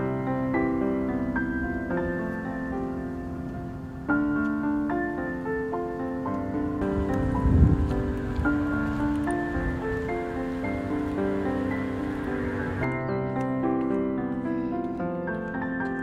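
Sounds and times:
faint hiss of outdoor noise: 0:00.0 - 0:13.8
gentle instrumental music: 0:00.0 - 0:16.0.

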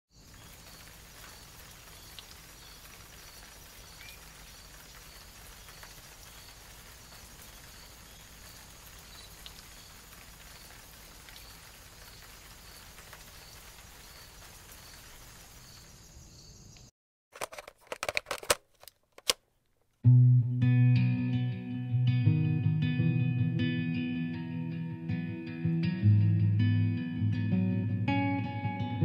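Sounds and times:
background hiss: 0:00.2 - 0:16.8.

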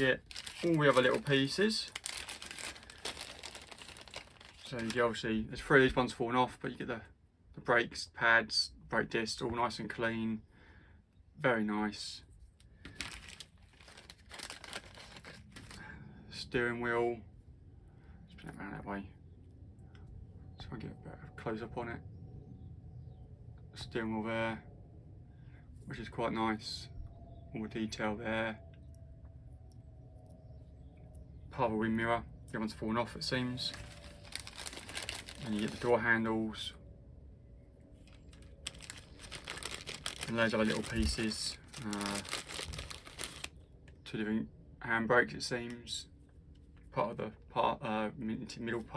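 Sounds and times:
plastic bag crinkling: 0:00.0 - 0:05.2, 0:12.8 - 0:15.8, 0:33.6 - 0:36.1, 0:38.0 - 0:43.6.

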